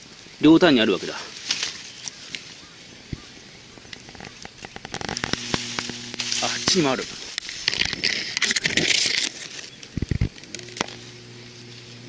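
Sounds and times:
leaves and twigs rustling: 0.0 - 12.0
low steady hum: 5.1 - 7.4, 10.2 - 12.0.

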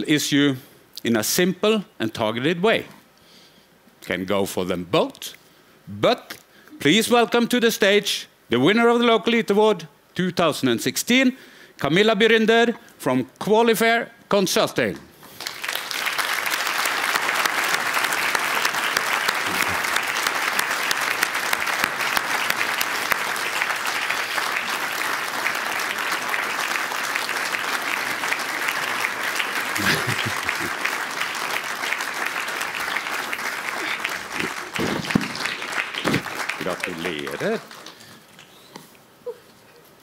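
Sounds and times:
audience applauding: 15.3 - 38.6
laughter: 29.8 - 30.8.

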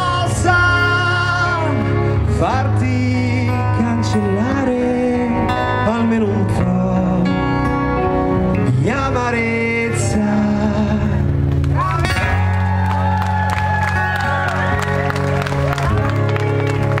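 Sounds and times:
man singing: 0.0 - 12.3
acoustic guitar: 0.0 - 17.0
crowd cheering: 11.6 - 17.0.

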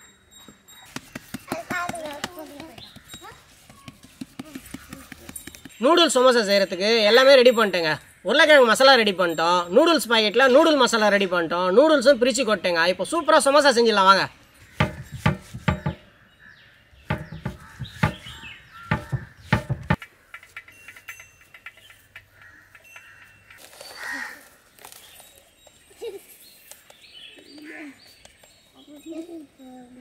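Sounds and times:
birds chirping: 0.0 - 30.0
hands patting food: 1.0 - 5.7.

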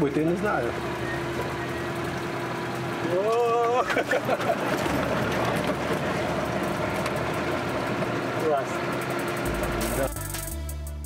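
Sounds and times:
rough driving noise: 0.0 - 10.6
jeep engine running: 0.0 - 10.9.

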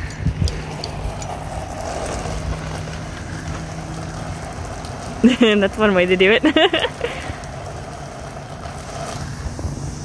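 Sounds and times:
hose spraying water: 0.0 - 10.0.

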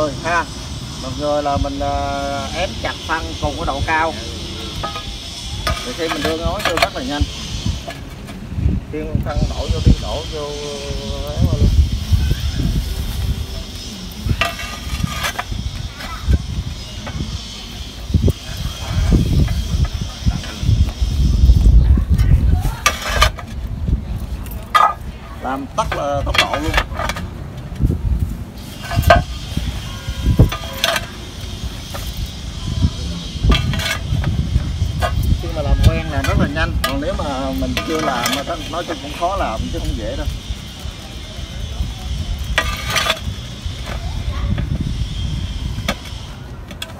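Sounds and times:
steady low rumble: 0.0 - 46.9
roof tiles knocking and scraping: 4.7 - 8.4, 14.3 - 16.4, 24.5 - 25.1, 25.7 - 27.6, 28.7 - 29.8, 30.4 - 32.4, 33.5 - 39.2, 42.4 - 44.7.

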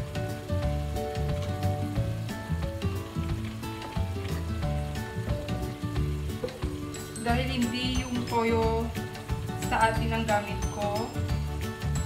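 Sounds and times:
background music with steady beat: 0.0 - 12.0
beans sizzling in a wok: 0.0 - 12.0.

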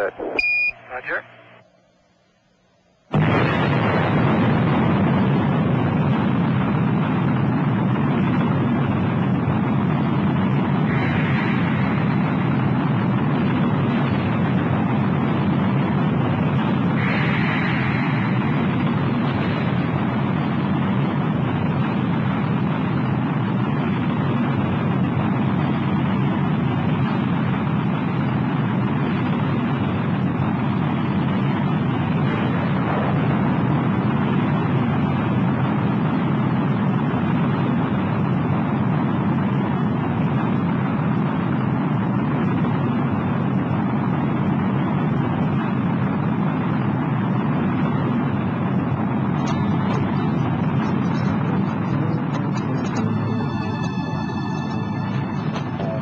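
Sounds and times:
rocket engines roaring: 0.0 - 1.6, 3.1 - 56.0.

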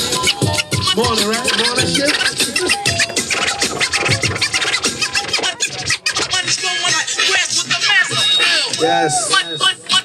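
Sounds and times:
hip-hop beat: 0.0 - 10.0
vinyl record scratching: 0.0 - 10.0.

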